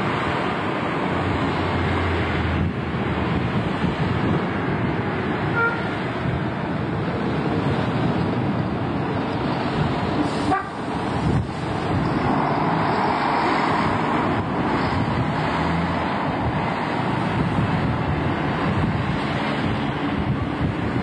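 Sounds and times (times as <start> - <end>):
bus diesel engine running: 0.0 - 21.0
traffic noise: 0.0 - 21.0
wind on microphone: 0.0 - 21.0.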